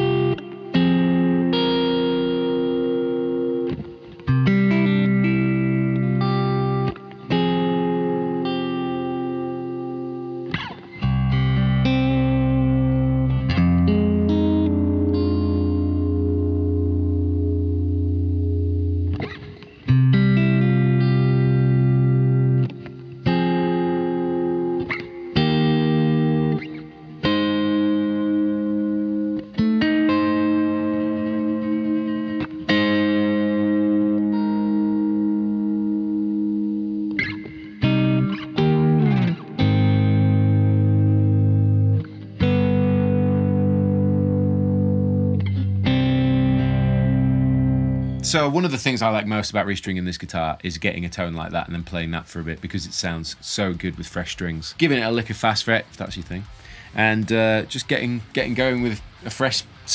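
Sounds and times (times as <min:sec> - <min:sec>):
electric guitar chords ringing: 0:00.0 - 0:49.7.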